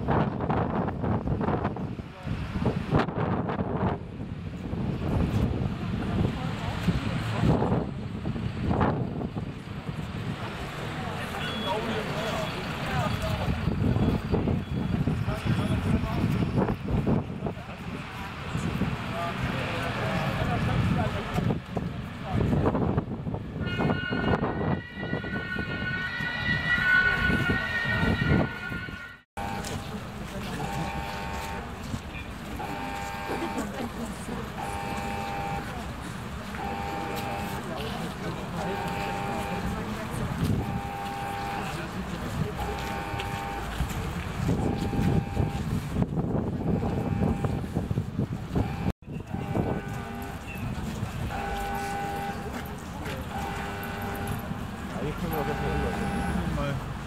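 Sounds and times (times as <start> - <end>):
street noise: 0.0 - 57.0
people talking: 5.6 - 7.8, 10.3 - 14.6, 15.2 - 22.8, 29.4 - 45.6, 48.4 - 56.9.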